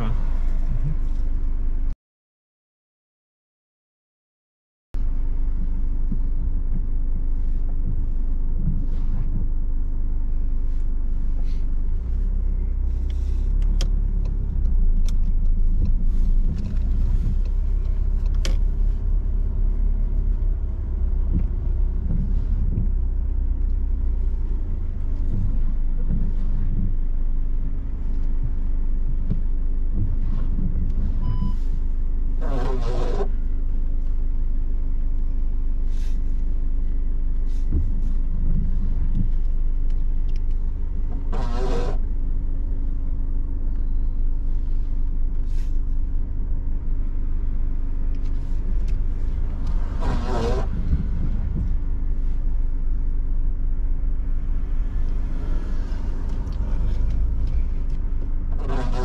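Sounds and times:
car engine and road rumble: 0.0s - 2.0s, 5.0s - 59.0s
short beep: 31.2s - 31.6s.

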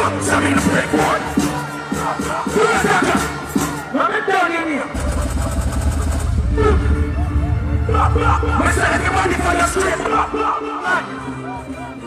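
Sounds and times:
vocalist singing over backing: 0.0s - 4.9s
heavy deep bass: 4.9s - 10.4s.

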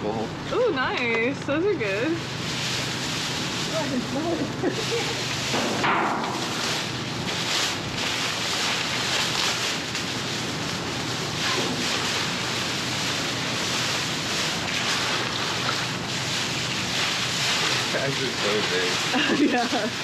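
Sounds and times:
plastic bag crinkling: 6.4s - 20.0s.

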